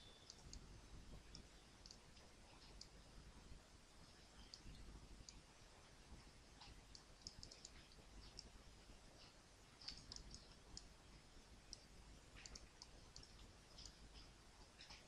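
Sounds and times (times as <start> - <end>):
low steady hum: 0.0 - 15.0
faint computer mouse clicks: 6.6 - 8.5, 9.2 - 10.9, 11.7 - 15.0.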